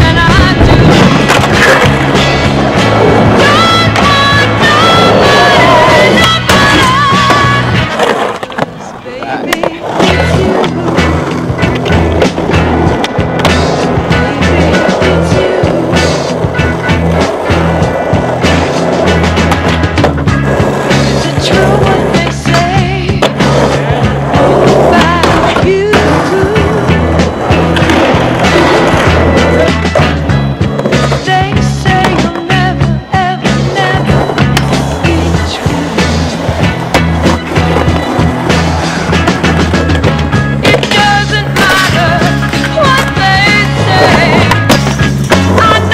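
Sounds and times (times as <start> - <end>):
music with steady bass line: 0.0 - 8.0, 10.0 - 45.9
skateboard clacks: 0.0 - 45.9
skateboard wheels rolling on concrete: 0.0 - 45.9.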